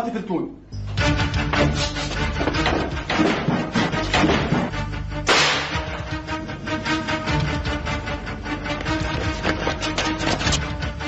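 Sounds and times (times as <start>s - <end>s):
background music with steady beat: 0.6s - 11.0s
pistol shot: 5.3s - 5.9s.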